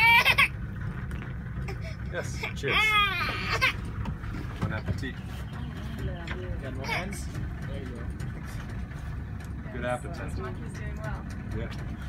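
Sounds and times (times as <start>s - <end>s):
boat motor idling: 0.0s - 12.0s.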